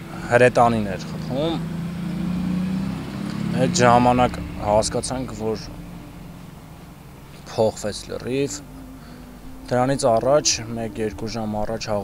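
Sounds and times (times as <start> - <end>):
low steady hum: 0.0 - 12.0
man speaking: 0.2 - 1.6, 3.5 - 5.8, 7.4 - 8.7, 9.7 - 12.0.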